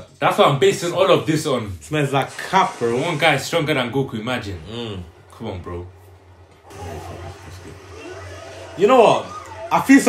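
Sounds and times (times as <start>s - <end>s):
faint cartoon soundtrack: 2.3s - 10.0s.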